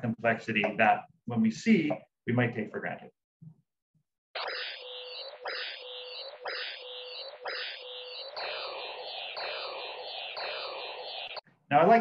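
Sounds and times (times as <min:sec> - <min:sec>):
sweeping electronic tones: 0:04.4 - 0:11.4.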